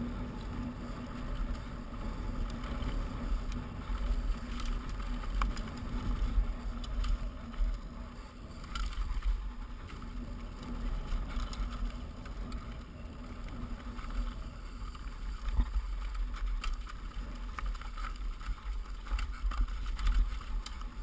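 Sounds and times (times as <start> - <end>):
bike tyres rolling over rock: 0.0 - 21.0
bike knocks and rattles: 15.2 - 21.0.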